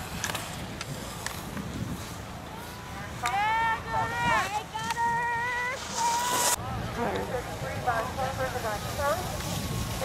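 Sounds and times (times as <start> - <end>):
spectators shouting and cheering: 2.4 - 7.2
burst of hiss: 5.5 - 6.6.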